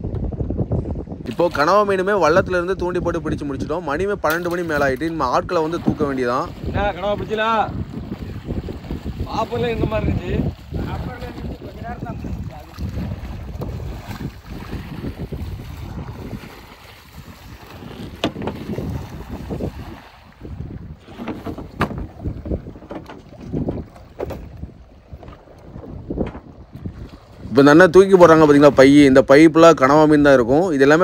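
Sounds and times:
wind buffeting microphone: 0:00.0 - 0:31.0
pole paddling through water: 0:04.2 - 0:29.2
sharp knocks: 0:21.2 - 0:22.1.

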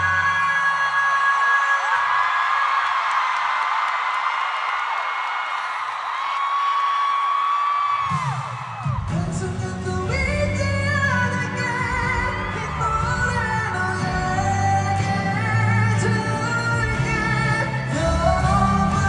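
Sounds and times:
person singing: 0:00.0 - 0:02.3, 0:08.2 - 0:19.0
crowd screaming and cheering: 0:00.0 - 0:19.0
pop concert music over pa: 0:00.0 - 0:19.0.

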